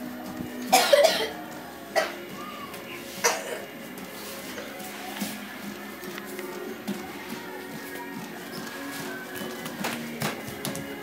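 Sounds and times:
loud cough: 0.7 - 1.3, 3.2 - 3.7.

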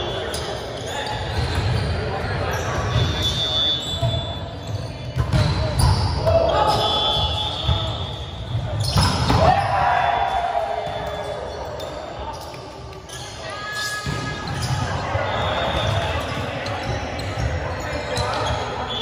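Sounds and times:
players shouting and calling: 0.0 - 19.0
sneakers squeaking on floor: 0.0 - 19.0.

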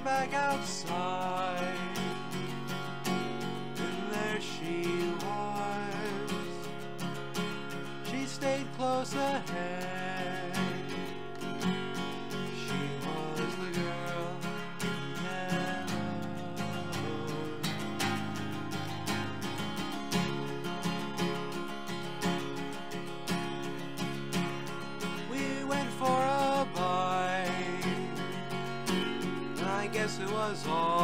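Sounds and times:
acoustic guitar strumming: 0.0 - 31.0.

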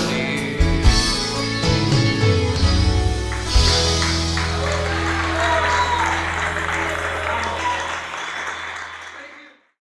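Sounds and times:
audience applauding: 3.0 - 9.8
audience chattering: 4.5 - 9.4.

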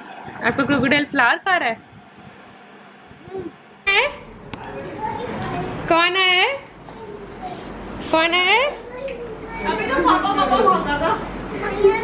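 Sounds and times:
adults talking: 0.0 - 12.0
toddler shouting: 8.8 - 10.0.

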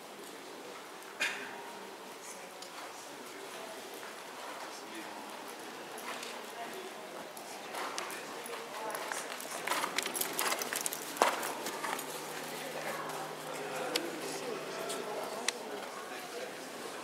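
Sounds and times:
people talking: 0.7 - 17.0.

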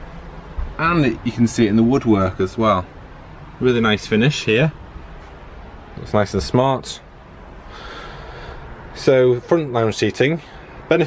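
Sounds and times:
soft breath: 7.6 - 8.8.

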